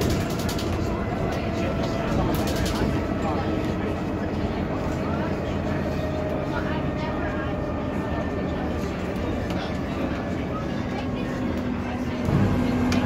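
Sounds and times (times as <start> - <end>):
bus engine and road rumble: 0.0 - 13.0.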